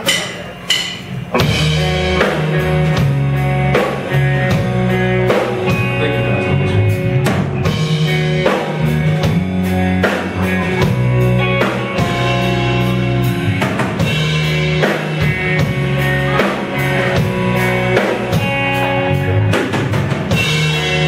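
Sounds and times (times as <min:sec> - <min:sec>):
bass guitar: 0:00.0 - 0:21.0
drum kit steady beat: 0:00.0 - 0:21.0
electric guitar: 0:01.3 - 0:21.0.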